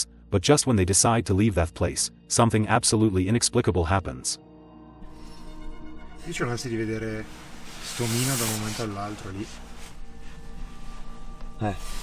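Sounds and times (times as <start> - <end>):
man speaking: 0.0 - 4.4, 6.2 - 9.6.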